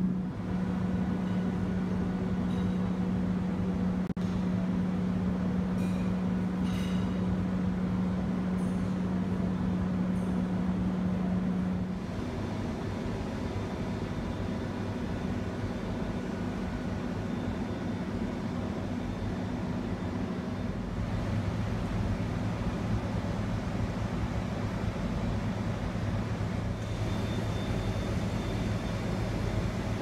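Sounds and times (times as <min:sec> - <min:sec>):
machinery hum with low drone: 0:00.0 - 0:30.0.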